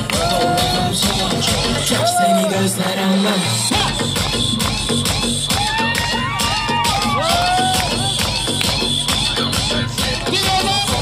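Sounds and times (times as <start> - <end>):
crowd cheering: 0.0 - 9.8
loud amplified music with beat: 0.0 - 11.0.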